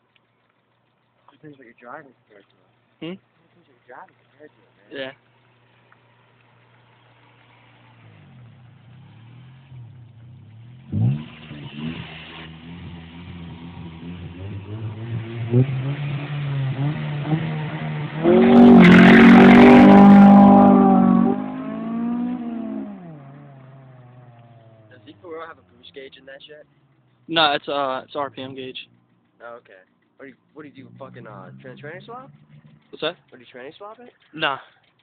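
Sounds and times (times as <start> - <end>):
car engine revving: 5.3 - 35.0.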